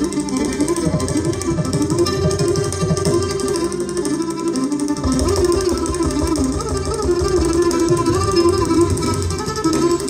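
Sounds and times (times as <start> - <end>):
sarod and violin melody: 0.0 - 10.0.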